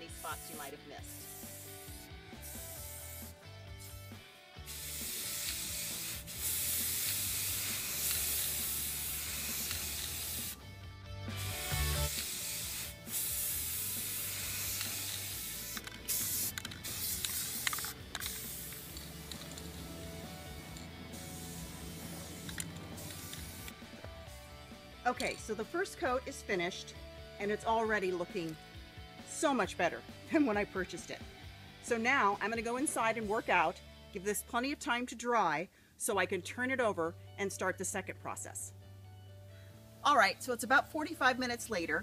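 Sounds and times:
aerosol spray can hissing: 0.0 - 10.7, 11.3 - 24.0.

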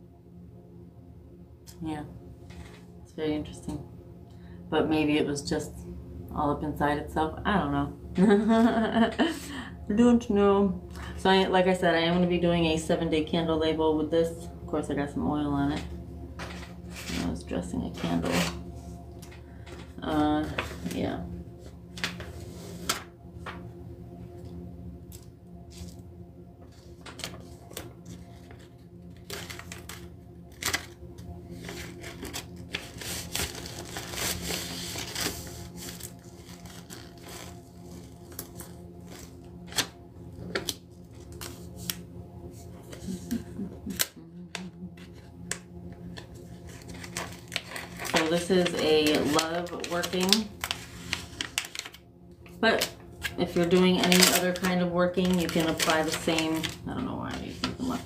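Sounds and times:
steady low hum: 0.0 - 58.0
paper rustling: 27.0 - 39.9, 46.6 - 52.0, 52.7 - 58.0
voice murmuring: 43.1 - 45.2.

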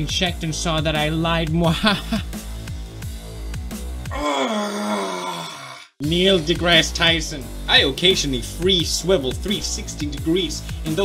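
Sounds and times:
backing music: 0.0 - 4.2, 6.0 - 11.0
man groaning: 4.1 - 6.0.

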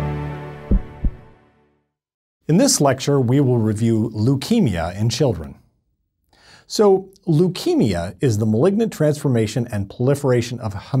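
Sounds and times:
low thumps: 0.7 - 1.3.

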